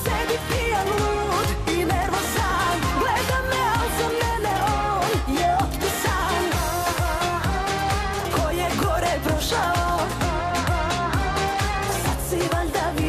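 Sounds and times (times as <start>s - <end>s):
dance beat with kick drum: 0.0s - 13.0s
woman singing: 0.0s - 13.0s.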